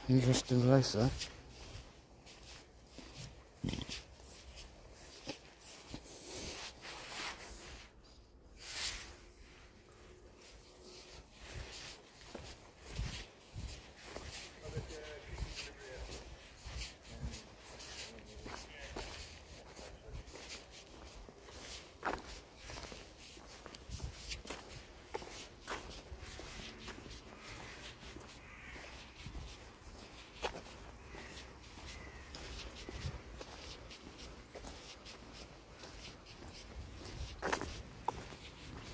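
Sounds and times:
footsteps on tarmac: 0:00.0 - 0:38.9.

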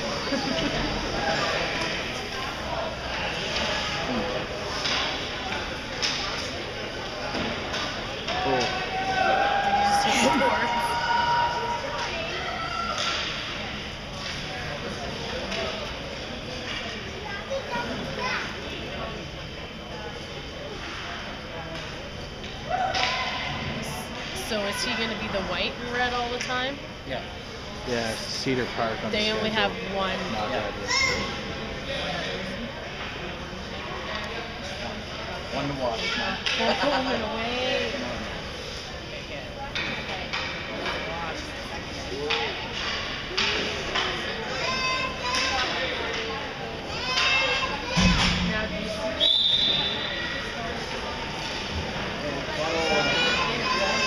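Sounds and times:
children chattering: 0:14.5 - 0:19.2, 0:38.9 - 0:54.0.

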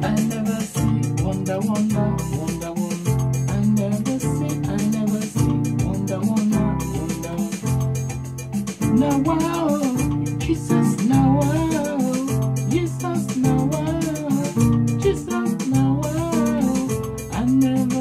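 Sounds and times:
keyboard playing highlife groove: 0:00.0 - 0:18.0.

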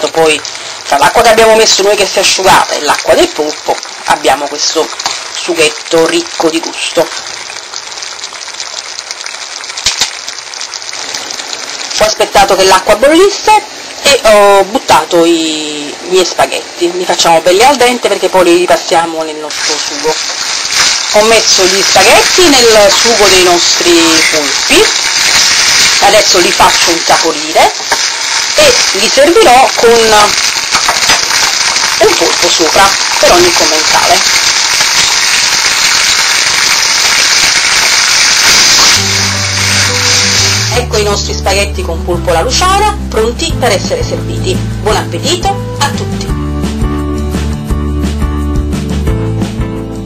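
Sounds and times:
crackling and spattering pops: 0:00.0 - 0:12.2, 0:19.5 - 0:40.8
sauce sizzling in a pan: 0:00.0 - 0:43.3.

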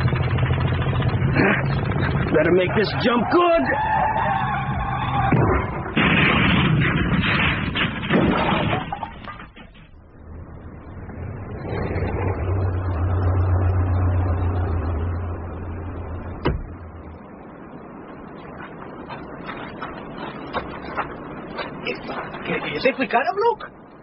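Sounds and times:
low steady rumble: 0:00.0 - 0:24.0
car crashing impacts: 0:05.0 - 0:10.1, 0:16.3 - 0:16.9.

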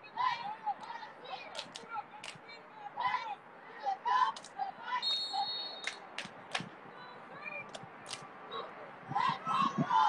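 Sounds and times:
referee's whistle blast: 0:05.0 - 0:05.9.

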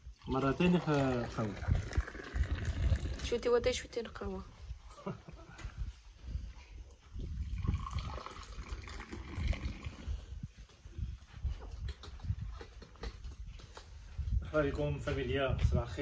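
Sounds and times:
tea pouring into glasses: 0:00.0 - 0:03.6, 0:07.4 - 0:10.2.

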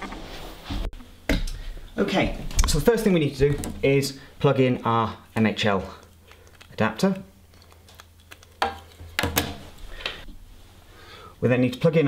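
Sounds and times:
cable handling noise: 0:05.8 - 0:10.4.

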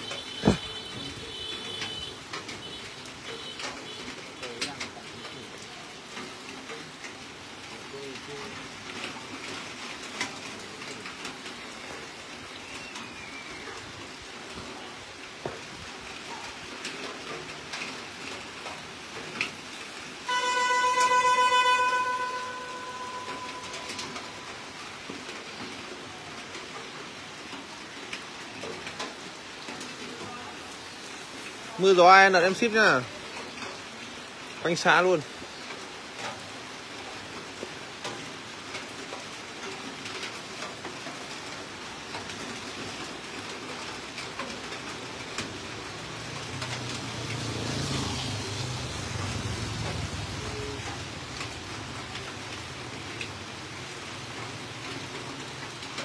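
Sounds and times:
loud horn-like tone: 0:00.0 - 0:02.8, 0:20.3 - 0:24.8.

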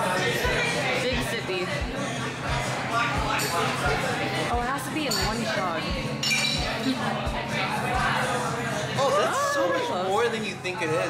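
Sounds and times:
people talking: 0:00.0 - 0:11.0
glasses clinking: 0:05.0 - 0:07.0.

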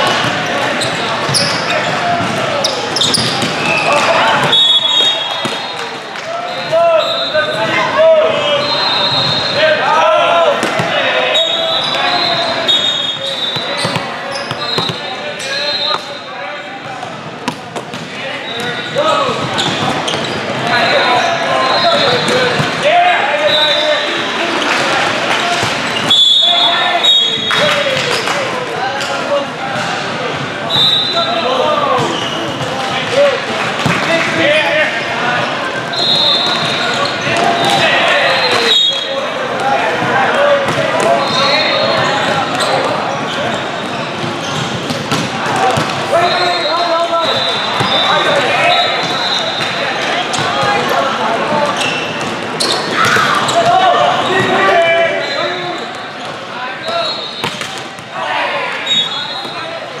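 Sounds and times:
voices calling and chattering: 0:00.0 - 1:00.0
referee whistle blasts: 0:03.0 - 0:05.9, 0:06.6 - 0:07.6, 0:08.6 - 0:09.6, 0:11.3 - 0:13.9, 0:14.6 - 0:16.1, 0:23.5 - 0:24.0, 0:26.1 - 0:27.7, 0:30.7 - 0:31.4, 0:35.9 - 0:39.2, 0:46.1 - 0:49.8, 0:56.8 - 0:57.6, 0:58.8 - 0:59.7.

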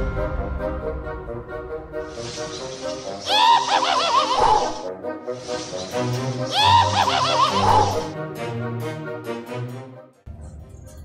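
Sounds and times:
spooky background music: 0:00.0 - 0:11.0
witch cackling laugh: 0:03.3 - 0:04.9, 0:06.5 - 0:08.1.

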